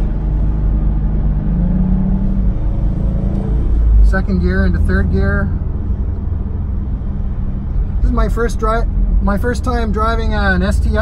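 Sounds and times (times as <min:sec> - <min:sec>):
car engine running: 0:00.0 - 0:11.0
road noise: 0:00.0 - 0:11.0.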